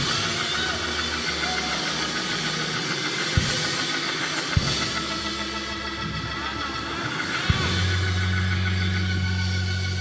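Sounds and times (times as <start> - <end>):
keyboard chords: 0.0 - 10.0
low bass notes: 0.0 - 10.0.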